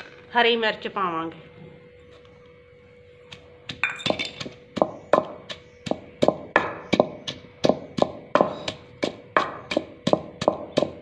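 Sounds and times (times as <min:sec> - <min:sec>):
wooden pestle pounding in clay mortar: 0:03.3 - 0:11.0.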